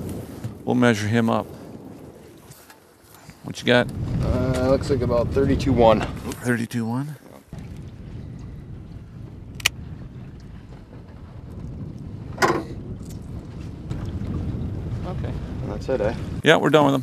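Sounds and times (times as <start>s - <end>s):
small boat engine rumble: 7.2s - 16.4s.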